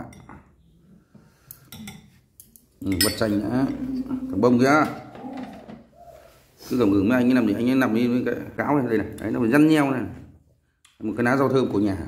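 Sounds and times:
ceramic bowl clinking: 0:00.0 - 0:00.6, 0:01.6 - 0:03.8.

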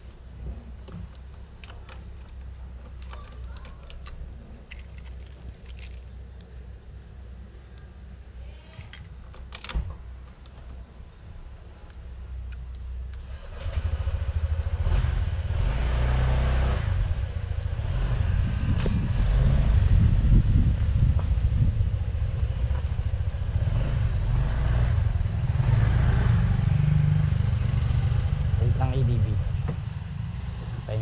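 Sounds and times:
road noise: 0:00.0 - 0:31.0
wind rumble on microphone: 0:16.8 - 0:25.4.

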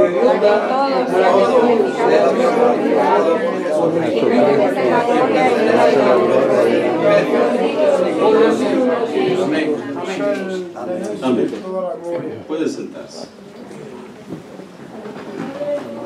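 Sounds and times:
congregation reading aloud together: 0:00.0 - 0:16.0.

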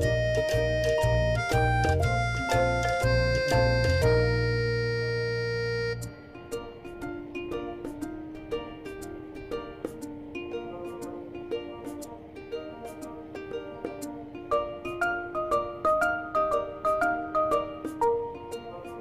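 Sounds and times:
loud held music chord: 0:00.0 - 0:19.0
plucked-string notes: 0:00.0 - 0:19.0.

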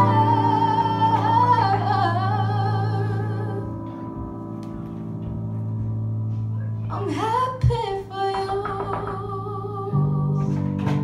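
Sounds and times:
woman singing with vibrato: 0:00.0 - 0:03.9, 0:06.9 - 0:10.9.

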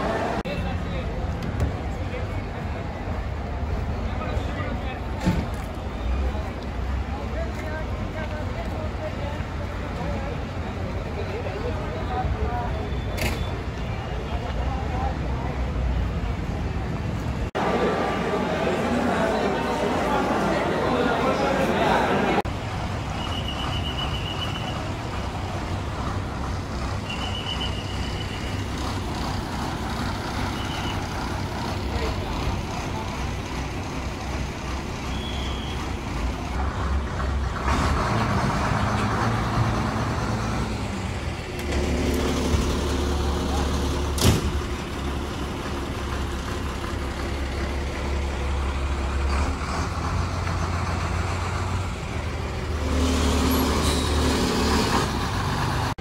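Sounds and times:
bus engines running: 0:00.0 - 0:56.0.

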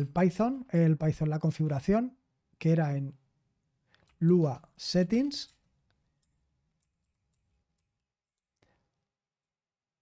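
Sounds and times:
computer keys clicking: 0:05.4 - 0:08.6.

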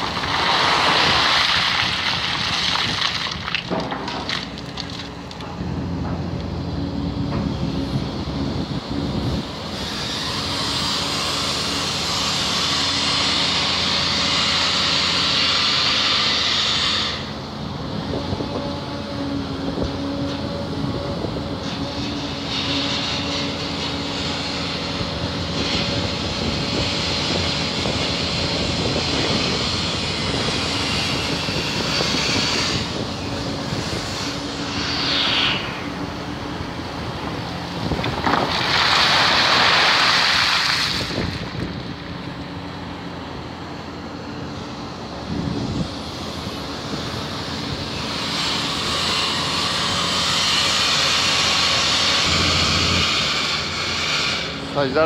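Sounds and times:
excavator engine and hydraulics: 0:00.0 - 0:55.0.

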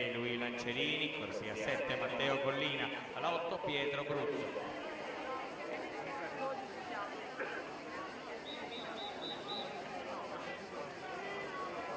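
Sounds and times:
crowd chatter: 0:00.0 - 0:11.9.

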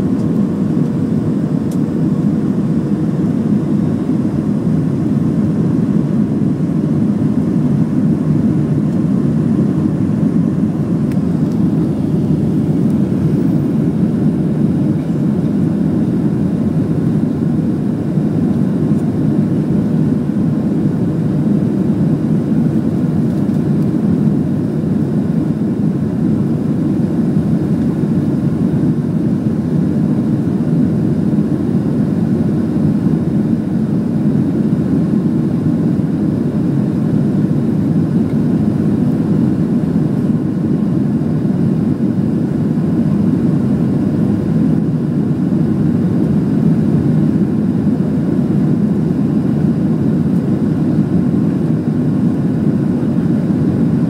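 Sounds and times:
faint steady hum: 0:00.0 - 0:54.0
jet cabin engine rumble: 0:00.0 - 0:54.0.

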